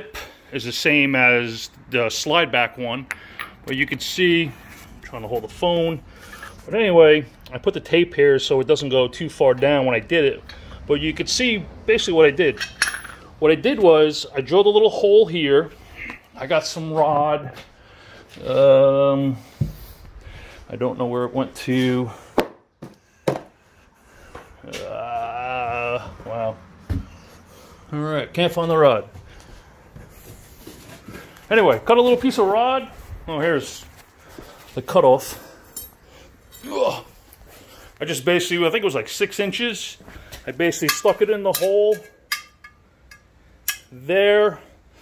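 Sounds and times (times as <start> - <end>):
metal rod clinking on steel: 12.5 - 13.2, 40.8 - 44.0
man humming: 24.6 - 26.4.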